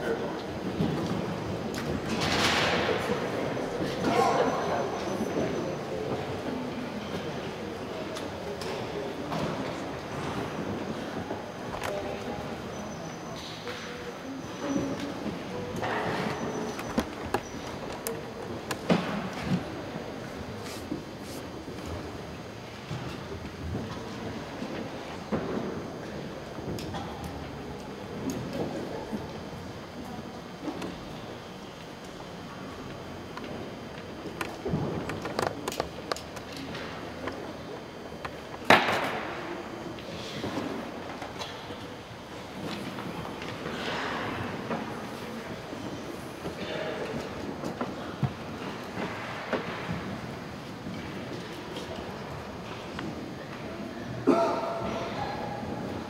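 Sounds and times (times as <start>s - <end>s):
murmur of voices: 0.0s - 56.0s
shuffling: 20.5s - 21.6s.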